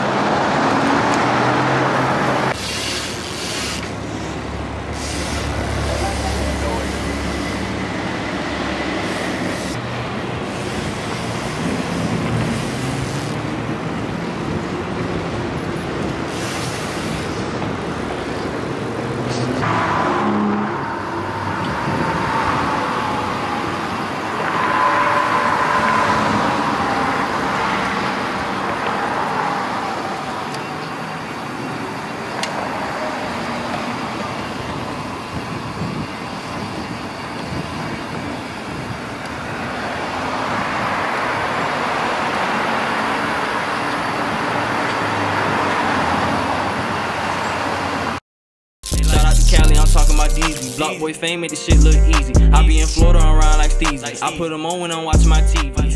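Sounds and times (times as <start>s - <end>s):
cars passing on street: 0.0s - 48.2s, 48.9s - 55.9s.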